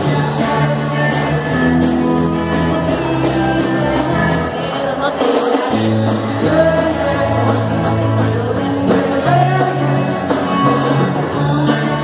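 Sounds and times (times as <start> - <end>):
rock and roll band playing: 0.0 - 12.0.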